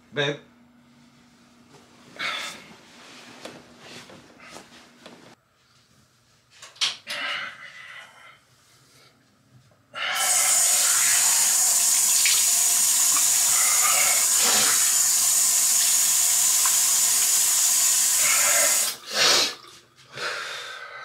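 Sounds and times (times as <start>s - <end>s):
faucet water running into basin: 10.2s - 19.7s.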